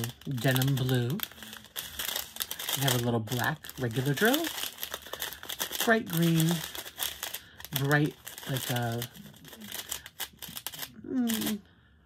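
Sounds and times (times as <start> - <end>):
plastic bags crinkling: 0.0 - 11.6.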